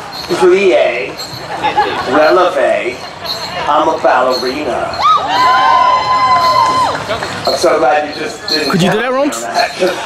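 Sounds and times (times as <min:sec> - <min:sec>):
audience cheering and whooping: 0:05.0 - 0:07.2.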